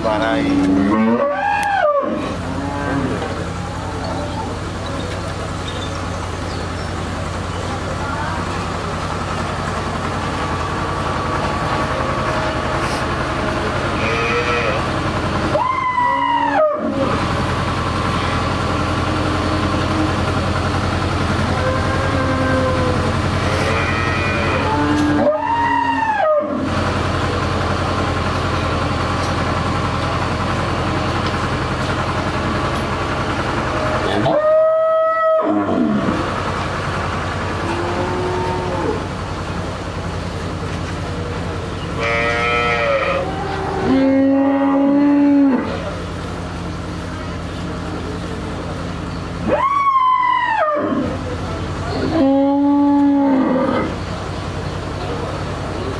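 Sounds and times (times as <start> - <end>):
low mechanical hum: 0.0 - 55.9
cattle mooing: 0.3 - 4.2, 13.9 - 15.0, 21.5 - 26.6, 37.6 - 39.1, 41.9 - 45.9, 52.0 - 54.0.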